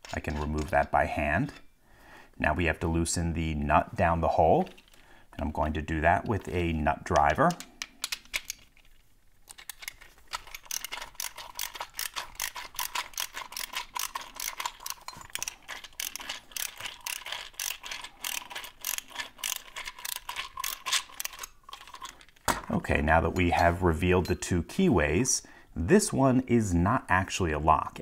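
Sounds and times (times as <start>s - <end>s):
ratcheting nut driver clicking: 9.5s - 22.3s.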